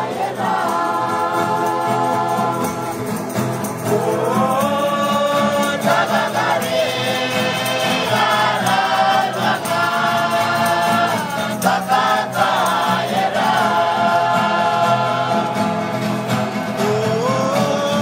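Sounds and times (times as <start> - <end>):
acoustic guitars strummed: 0.0 - 18.0
group singing a hymn: 0.0 - 18.0.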